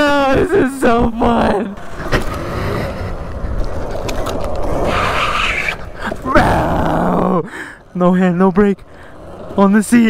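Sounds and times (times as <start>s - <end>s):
wind buffeting microphone: 0.0s - 10.0s
low rumble: 0.9s - 8.0s.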